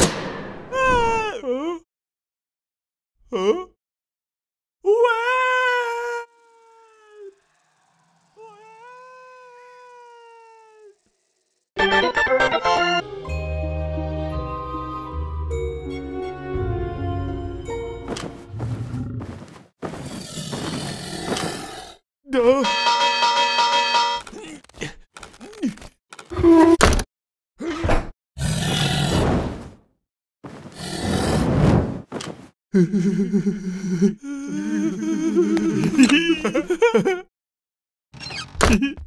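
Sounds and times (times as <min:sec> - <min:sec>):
voice-like wail: 0:00.7 - 0:01.8, 0:04.8 - 0:11.1, 0:34.3 - 0:36.0
dragon fire breath roar: 0:07.2 - 0:11.6, 0:28.4 - 0:29.2, 0:30.8 - 0:31.9.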